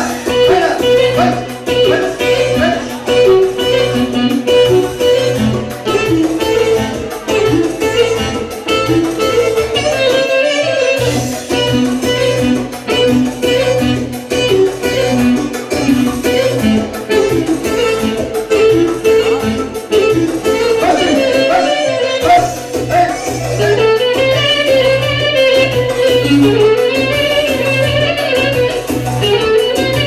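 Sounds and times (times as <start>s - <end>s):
live band dance music: 0.0s - 30.0s.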